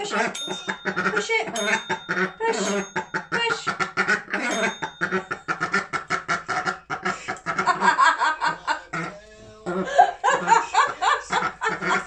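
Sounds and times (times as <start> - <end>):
tap bell ring: 4.5 - 5.5
people laughing: 7.0 - 12.0.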